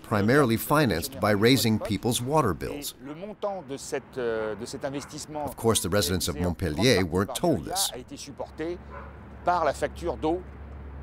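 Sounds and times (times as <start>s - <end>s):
man speaking: 0.0s - 8.8s.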